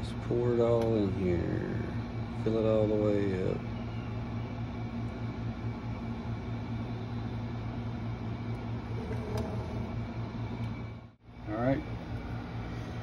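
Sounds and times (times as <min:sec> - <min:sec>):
electric fan humming: 0:00.0 - 0:13.0.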